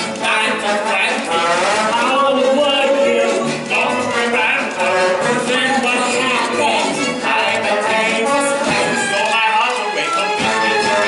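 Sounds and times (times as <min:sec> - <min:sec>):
person singing long note: 0:02.6 - 0:03.5.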